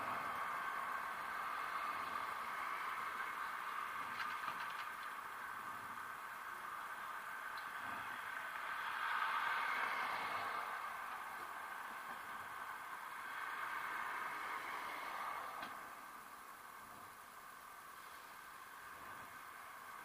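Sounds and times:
cars passing: 0.0s - 20.0s.

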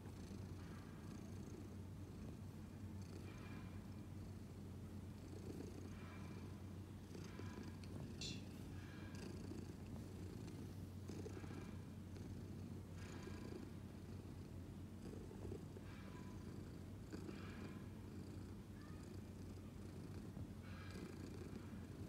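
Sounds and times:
cat purring: 0.0s - 22.0s.

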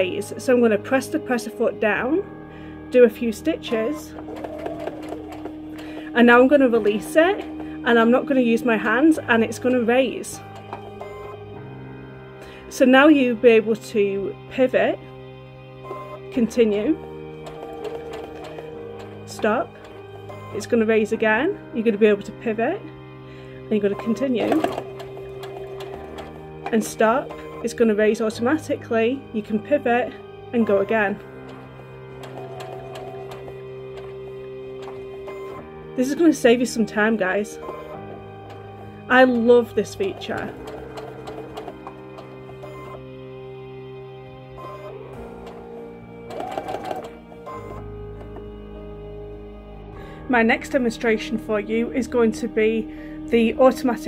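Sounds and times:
background music: 0.0s - 54.0s
sewing machine stitching: 3.6s - 11.4s, 17.4s - 21.4s, 23.8s - 28.6s, 29.9s - 36.3s, 37.0s - 43.0s, 44.6s - 48.4s.

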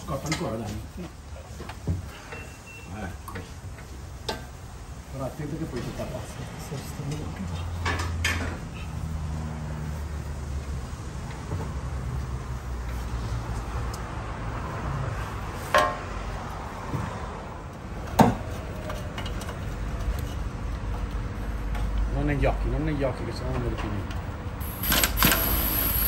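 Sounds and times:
metal clanks on exhaust pipe: 7.0s - 8.6s, 15.7s - 16.1s.

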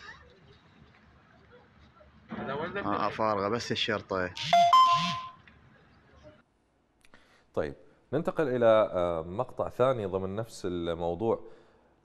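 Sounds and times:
faint background noise: 0.0s - 12.0s
two-pitch tone: 4.4s - 5.4s.

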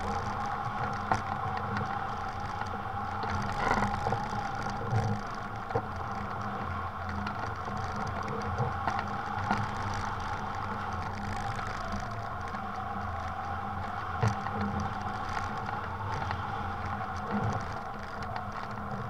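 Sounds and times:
wind rushing past glider: 0.0s - 19.0s.

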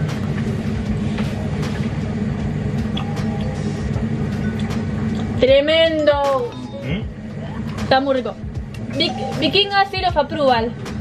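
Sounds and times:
extractor fan humming: 0.0s - 11.0s.

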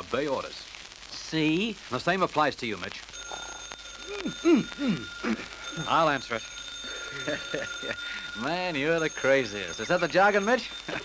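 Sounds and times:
telephone ringing: 3.1s - 11.0s.

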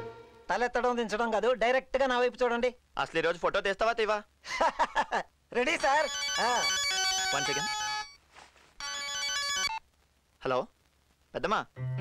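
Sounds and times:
phone ringtone: 5.8s - 8.2s, 8.8s - 9.8s.

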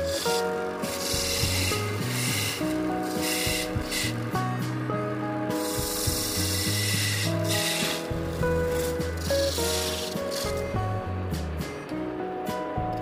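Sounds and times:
tool scraping spinning wood: 0.0s - 4.9s, 5.5s - 11.8s
background music: 0.0s - 13.0s.

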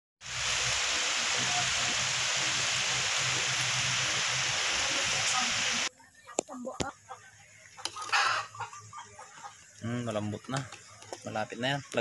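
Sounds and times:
vegetables grilling over charcoal: 0.2s - 5.9s, 9.7s - 12.0s.

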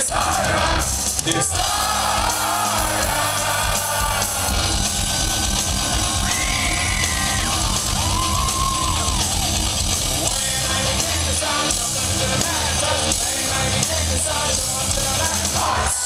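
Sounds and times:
crowd yelling: 0.0s - 16.0s
heavy metal band playing live: 0.0s - 16.0s.

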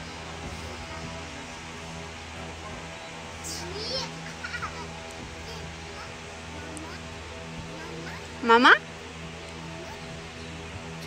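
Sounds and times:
background music with held tones: 0.0s - 11.0s
children's voices at play: 3.4s - 8.4s, 9.5s - 10.4s.

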